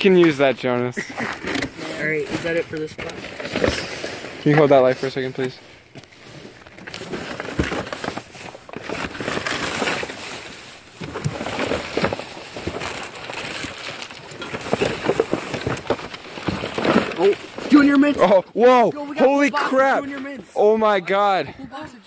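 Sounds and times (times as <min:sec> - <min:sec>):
plastic bags and boxes rustling: 0:00.0 - 0:21.4.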